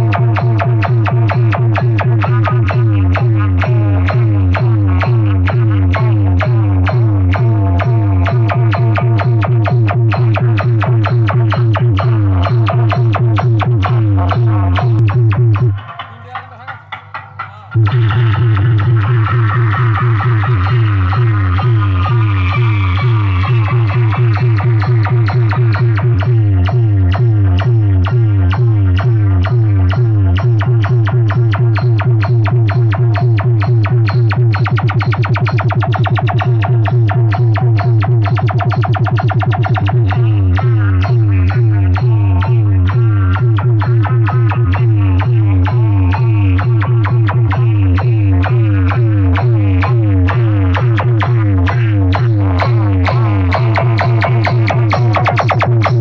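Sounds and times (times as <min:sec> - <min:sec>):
loud distorted dance music: 0:00.0 - 0:56.0.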